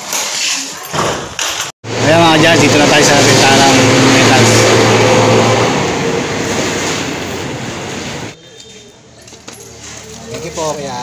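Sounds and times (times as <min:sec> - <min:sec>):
vehicle engine hum: 0:01.9 - 0:08.4.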